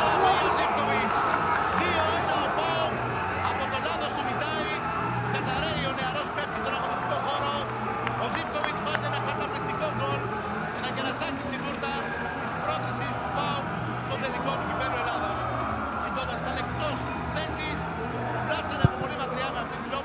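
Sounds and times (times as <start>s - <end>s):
people shouting and cheering: 0.0s - 20.0s.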